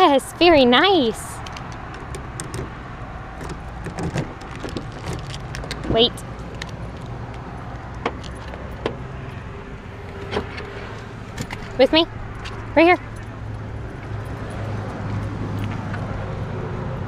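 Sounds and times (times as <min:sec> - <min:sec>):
car door opening: 0:01.4 - 0:09.1, 0:10.1 - 0:11.8
keys jingling: 0:03.4 - 0:09.4, 0:11.4 - 0:15.8.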